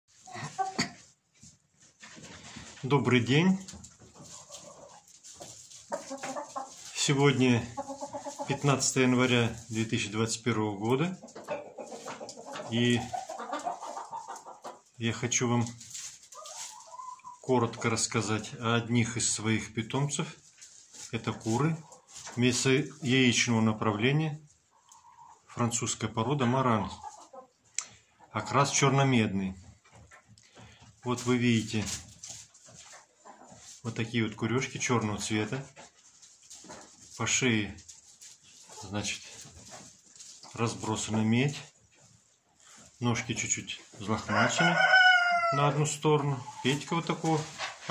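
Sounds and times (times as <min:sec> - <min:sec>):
chickens clucking softly: 0:00.2 - 0:47.9
hens vocalising softly: 0:24.6 - 0:25.6.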